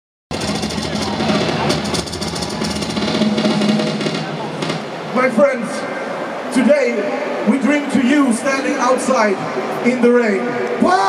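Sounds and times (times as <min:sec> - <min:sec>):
fast drumming: 0:00.3 - 0:05.3
metal band through loudspeakers: 0:00.3 - 0:11.0.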